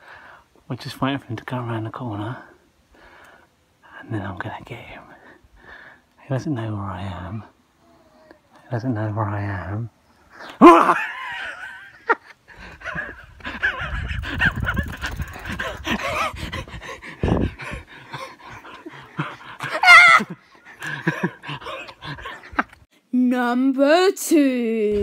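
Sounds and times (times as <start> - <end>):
boy laughing and giggling: 10.5 - 22.9
high-pitched squeal of laughter: 19.6 - 22.6.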